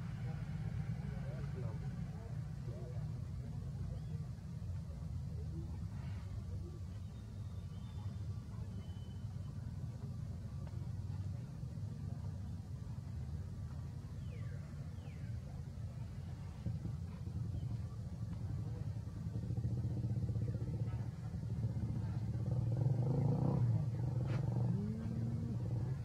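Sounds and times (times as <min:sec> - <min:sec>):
motor engine humming: 0:00.0 - 0:26.0.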